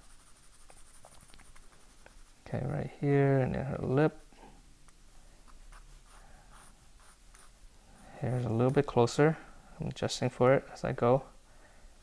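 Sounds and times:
pencil scratching on paper: 0:00.0 - 0:02.3, 0:05.7 - 0:07.6.

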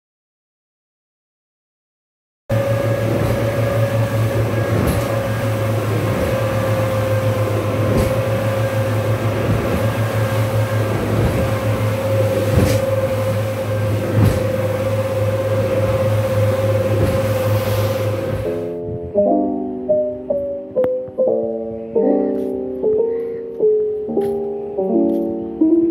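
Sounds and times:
speedboat engines droning: 0:02.5 - 0:25.9
hull thumping on waves: 0:02.9 - 0:19.1.

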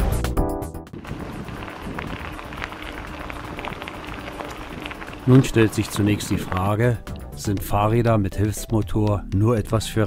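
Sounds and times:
wind on microphone: 0:01.0 - 0:06.8
bike tyres crunching on gravel: 0:01.0 - 0:07.0.

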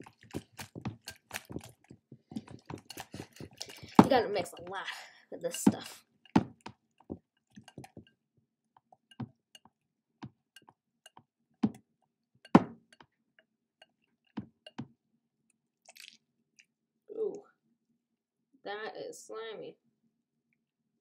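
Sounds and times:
wet squelches of slime: 0:00.0 - 0:08.1, 0:15.8 - 0:16.8.

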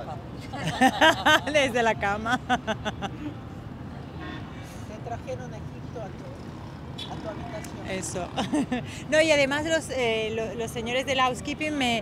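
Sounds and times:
distant city traffic rumble: 0:00.0 - 0:12.0.

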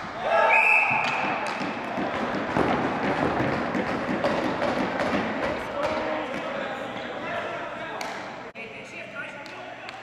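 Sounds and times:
sticks and ball knocking on wooden floor: 0:01.0 - 0:06.5
players chattering and calling: 0:04.8 - 0:10.0.

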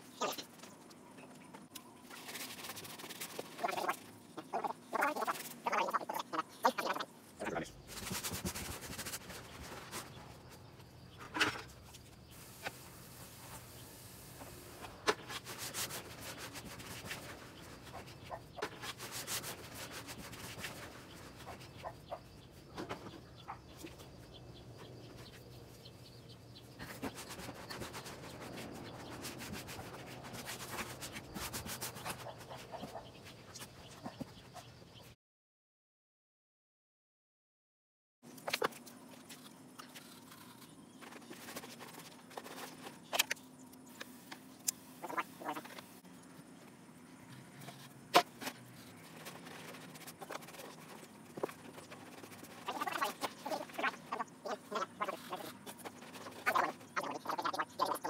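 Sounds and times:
gloved hands mixing gritty material: 0:47.5 - 0:58.0.

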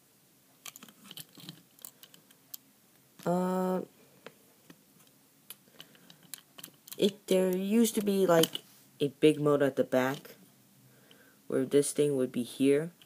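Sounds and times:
person saying uh: 0:03.2 - 0:03.9.

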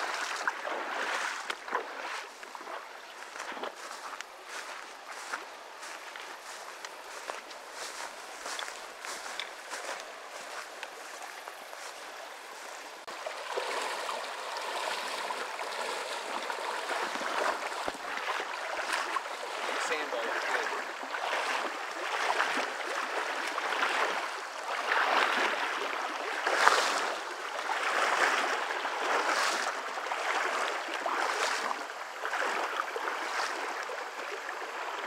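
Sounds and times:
footsteps through long grass: 0:00.0 - 0:34.4
creek water running: 0:00.0 - 0:35.0.

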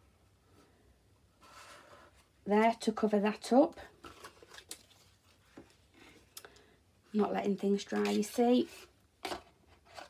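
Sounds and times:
rustle of card and paper: 0:03.8 - 0:06.3.

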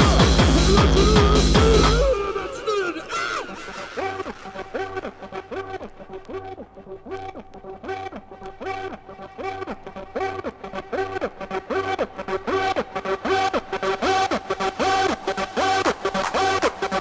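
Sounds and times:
low bass pulse: 0:00.0 - 0:02.2
high percussion: 0:00.0 - 0:05.8.

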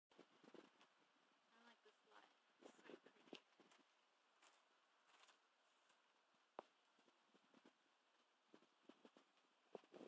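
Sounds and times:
faint rustles: 0:02.6 - 0:10.0.

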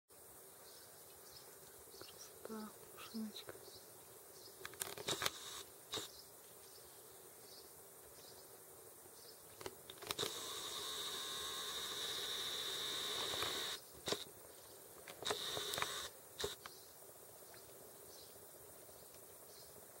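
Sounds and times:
zoom lens motor whining: 0:04.8 - 0:06.1, 0:10.0 - 0:14.3, 0:15.2 - 0:16.7.

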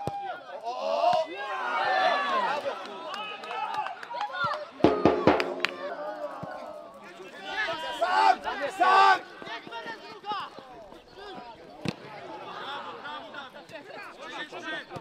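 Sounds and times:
sharp knocks: 0:04.9 - 0:06.0
men shouting and calling: 0:04.9 - 0:10.5.

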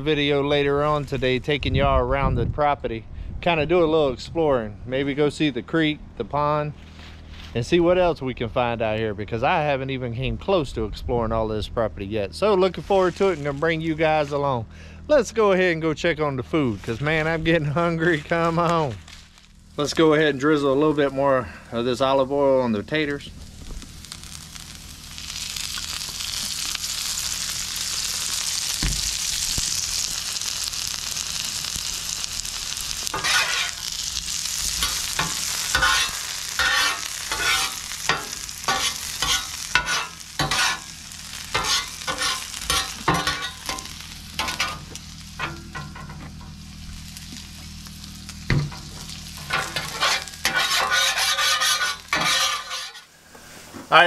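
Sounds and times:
potatoes sizzling in oil: 0:23.1 - 0:54.0
metal spatula scraping and clicking: 0:33.1 - 0:33.8, 0:34.8 - 0:40.8, 0:41.6 - 0:44.8, 0:49.5 - 0:53.1.

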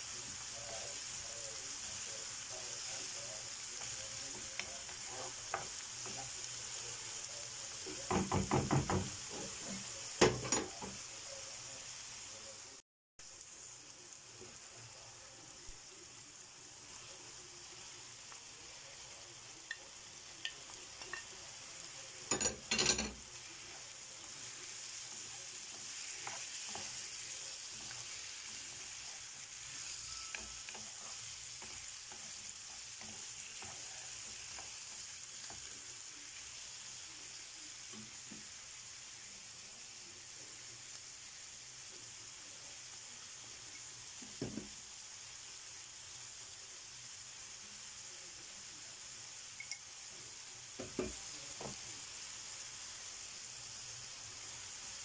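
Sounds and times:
food sizzling in a frying pan: 0:00.0 - 0:55.0
knock: 0:08.1 - 0:09.2
wooden spoon stirring: 0:22.2 - 0:35.7.

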